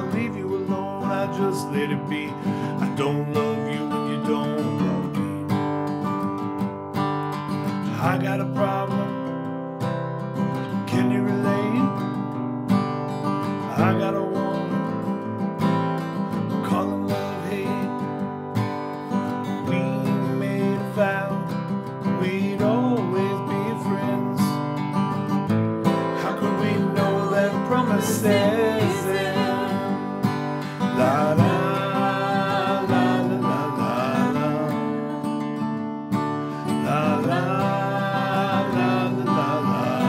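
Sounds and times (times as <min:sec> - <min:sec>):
man singing: 0:00.0 - 0:05.8, 0:07.8 - 0:09.5, 0:10.6 - 0:12.1, 0:13.5 - 0:15.2, 0:16.4 - 0:18.2, 0:19.2 - 0:24.7, 0:25.9 - 0:40.0
acoustic guitar strumming: 0:00.0 - 0:40.0.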